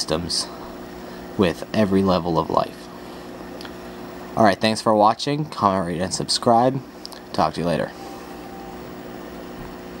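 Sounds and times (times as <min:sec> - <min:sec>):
machine hum with faint whine: 0:00.0 - 0:10.0.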